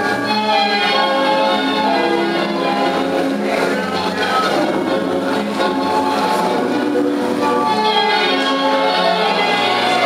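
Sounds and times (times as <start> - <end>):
accordion playing tango: 0.0 - 10.0.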